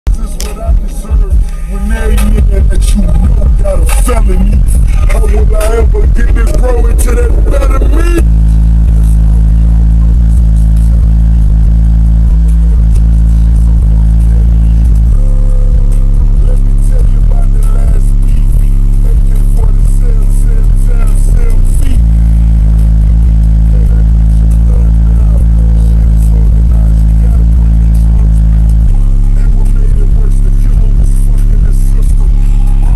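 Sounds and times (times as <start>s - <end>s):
loud bass-heavy music from subwoofers: 0.0s - 32.9s.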